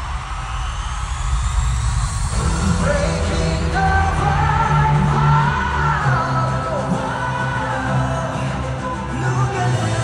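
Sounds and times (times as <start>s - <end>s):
man singing over backing track: 2.4s - 10.0s.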